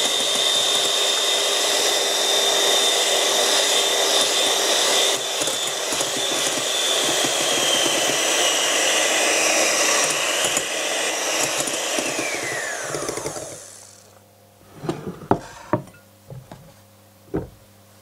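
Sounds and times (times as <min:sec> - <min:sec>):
electric hand mixer whirring: 0:00.0 - 0:14.2.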